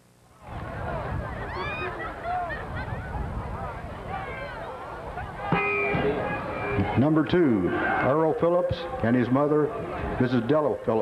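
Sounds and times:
crowd shouting and calling: 0.5s - 11.0s.

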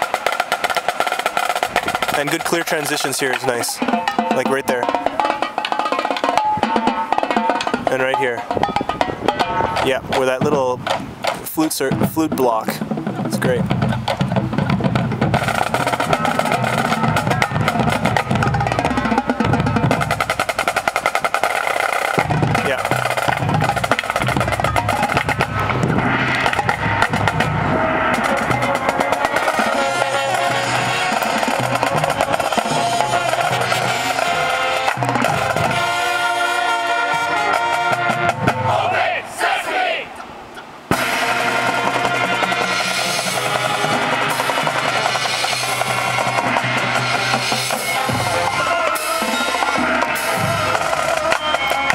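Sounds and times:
snare drum rolls: 0.0s - 39.6s, 40.9s - 51.9s
marching band playing: 0.0s - 40.3s, 40.9s - 51.9s.

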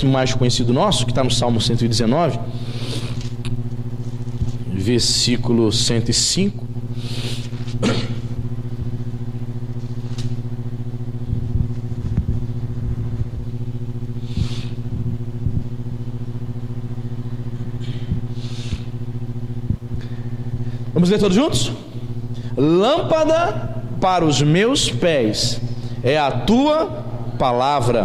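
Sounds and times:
mains hum: 0.0s - 28.0s
microphone handling rustles: 3.0s - 4.7s, 7.2s - 9.1s, 11.2s - 13.6s.

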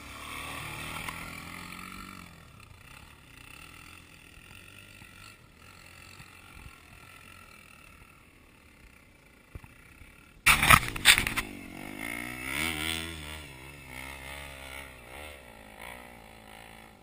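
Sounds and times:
dirt bike engine running: 0.0s - 17.0s
distant motorcycle climbing: 0.0s - 17.0s.

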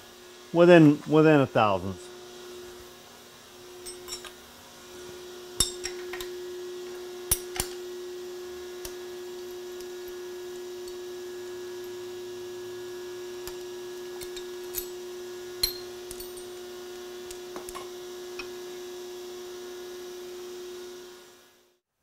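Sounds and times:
steady electrical hum: 0.0s - 21.5s
metallic clinks of wrench and clamps: 3.9s - 4.4s, 13.5s - 15.0s, 15.6s - 16.6s.

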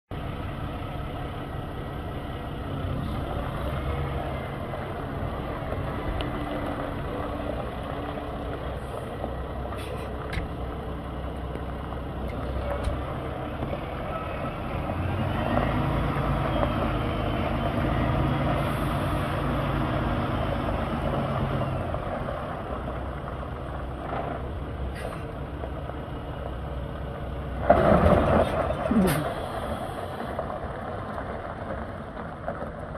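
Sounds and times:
diesel truck engine idling: 0.1s - 32.6s.

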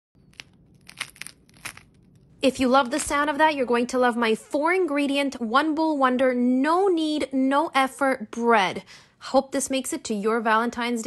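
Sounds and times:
bread crust crackling: 0.2s - 3.3s.

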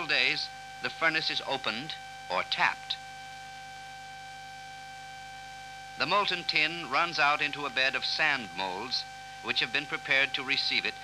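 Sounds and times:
low hum: 0.0s - 11.0s
steady high whine: 0.0s - 11.0s.

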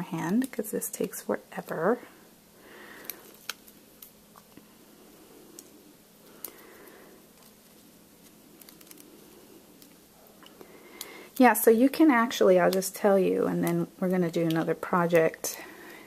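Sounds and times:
soft paper rustles: 5.5s - 10.7s.

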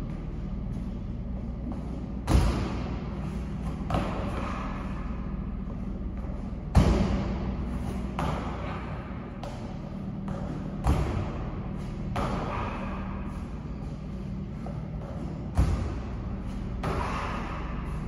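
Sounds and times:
steady low hum: 0.0s - 18.0s
feet landing heavily: 1.6s - 17.9s.

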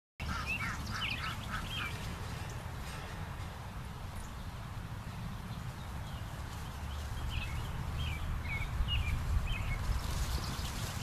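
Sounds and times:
bird chirping: 0.2s - 2.6s, 4.1s - 11.0s.

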